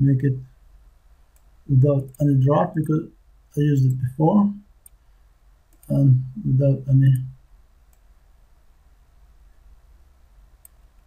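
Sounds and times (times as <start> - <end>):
man speaking: 0.0 - 0.5, 1.7 - 4.6, 5.8 - 7.3
low steady hum: 0.0 - 11.0
faint computer mouse click: 1.3 - 1.5, 7.9 - 8.1, 10.6 - 11.0.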